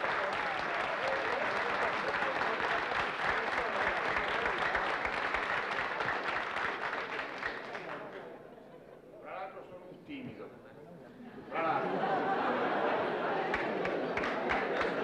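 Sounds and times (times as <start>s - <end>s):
audience applauding: 0.0s - 8.4s, 11.7s - 15.0s
voices: 8.2s - 15.0s.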